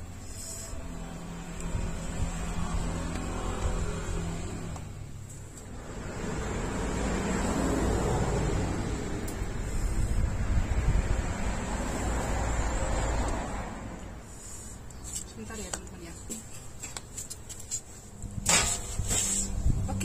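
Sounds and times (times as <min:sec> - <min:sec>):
passing traffic engine hum: 0:00.0 - 0:17.1
traffic rushing with low rumble: 0:00.0 - 0:20.0.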